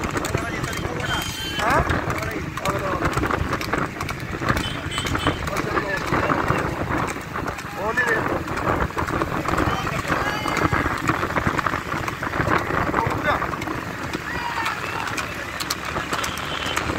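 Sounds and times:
wind on microphone: 0:00.0 - 0:15.1
cart rattling: 0:00.0 - 0:16.9
hoofbeats on paved road: 0:00.0 - 0:16.9
voices shouting: 0:09.5 - 0:11.2, 0:13.9 - 0:15.6.

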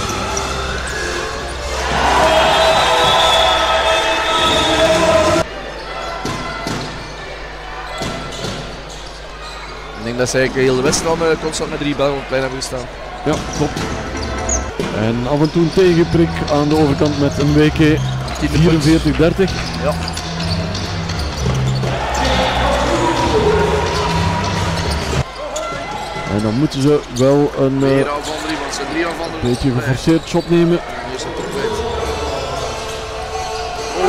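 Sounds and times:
crowd noise: 0:00.0 - 0:34.0
indoor arena background noise: 0:00.0 - 0:34.0.

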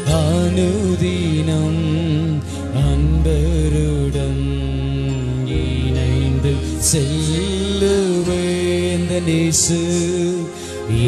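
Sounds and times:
electronic keyboard low chords: 0:00.0 - 0:11.0
person singing slow melody: 0:00.0 - 0:11.0.

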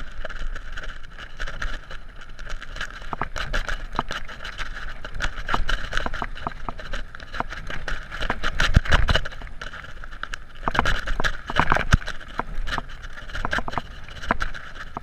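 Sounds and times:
bike clicks and knocks on bumps: 0:00.0 - 0:15.0.

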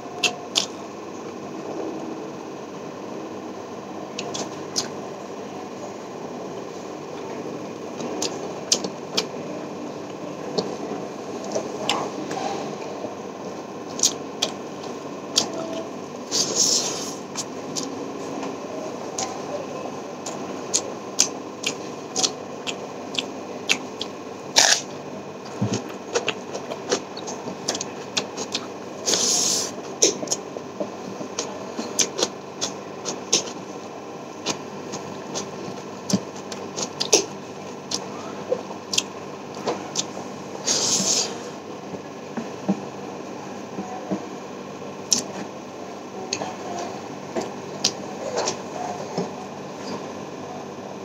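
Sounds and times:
man chewing food: 0:00.1 - 0:00.8, 0:07.9 - 0:09.4, 0:13.9 - 0:15.5, 0:16.3 - 0:18.5, 0:20.2 - 0:42.8, 0:45.1 - 0:45.6
wet mouth clicks: 0:00.2 - 0:00.7, 0:20.2 - 0:24.9.

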